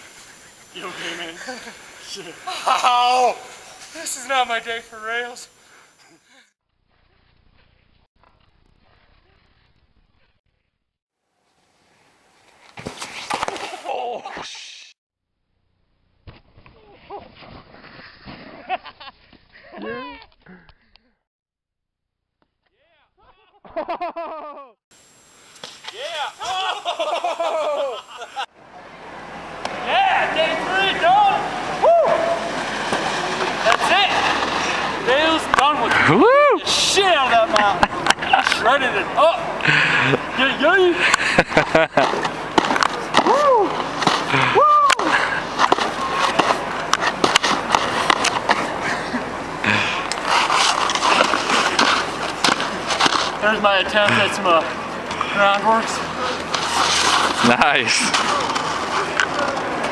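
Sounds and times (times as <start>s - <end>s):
people laughing and calling out: 0.0s - 4.1s, 26.0s - 32.6s, 33.2s - 42.4s, 43.0s - 46.8s
steady background hiss: 0.0s - 6.4s, 23.8s - 59.8s
snowboard clicks and scuffs: 12.4s - 14.5s, 32.1s - 36.0s, 41.1s - 49.2s, 49.9s - 54.3s, 55.2s - 59.9s
snowboard scraping over snow: 29.9s - 39.0s, 39.7s - 54.6s, 55.3s - 59.9s.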